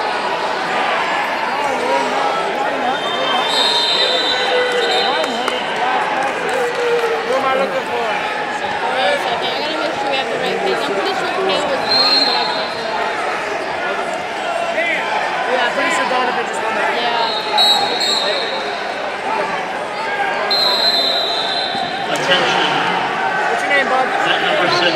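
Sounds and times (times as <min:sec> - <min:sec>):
many people talking in a hall: 0:00.0 - 0:24.9
shrill whistle blasts: 0:03.0 - 0:05.6, 0:17.2 - 0:18.6, 0:20.5 - 0:22.0.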